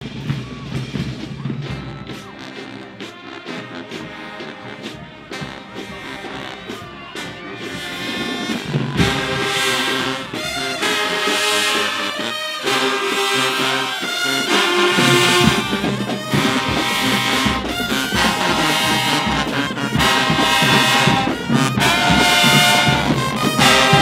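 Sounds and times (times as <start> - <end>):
marching band playing: 0.0 - 24.0
sharp drum beats: 0.0 - 24.0.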